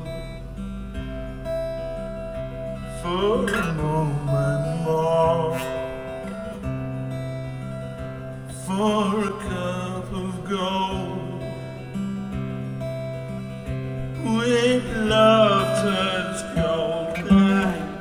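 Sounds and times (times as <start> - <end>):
man singing with vibrato: 0.0 - 0.6, 2.8 - 7.6, 8.2 - 12.1, 14.0 - 18.0
strummed acoustic guitar: 0.0 - 18.0.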